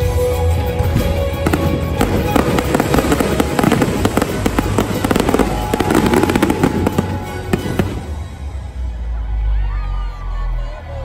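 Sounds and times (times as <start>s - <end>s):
fireworks crackling pops: 0.9s - 8.2s.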